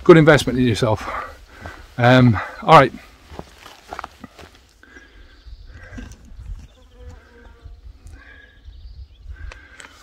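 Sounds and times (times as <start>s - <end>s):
wind rumble on microphone: 5.5s - 9.7s.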